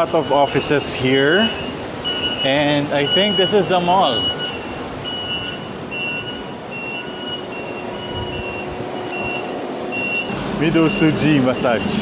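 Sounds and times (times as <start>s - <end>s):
high electronic beeping: 0.0s - 10.3s
city traffic rumble: 0.0s - 12.0s.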